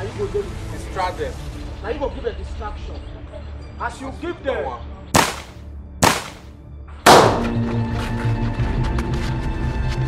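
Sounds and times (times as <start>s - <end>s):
gunshots: 5.2s - 6.5s, 7.1s - 7.6s.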